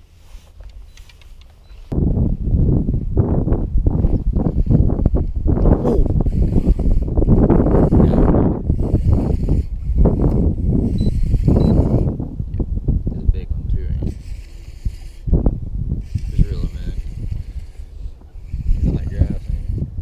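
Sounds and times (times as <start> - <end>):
low rumble: 1.9 - 14.2, 15.2 - 19.2.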